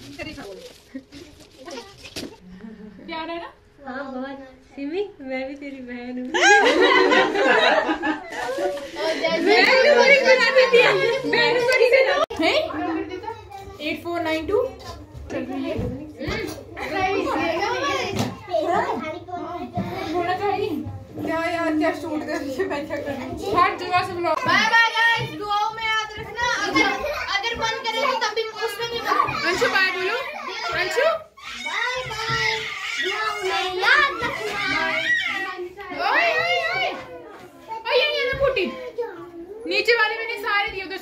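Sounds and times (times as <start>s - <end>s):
children talking and calling out: 0.7s - 2.4s, 6.3s - 41.0s.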